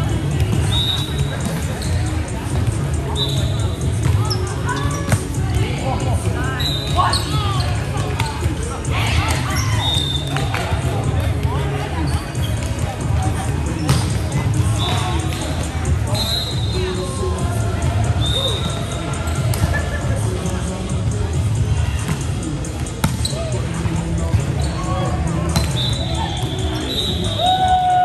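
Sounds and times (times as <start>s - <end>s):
sneakers squeaking on court: 0.4s - 5.5s, 6.6s - 8.6s, 25.5s - 27.0s.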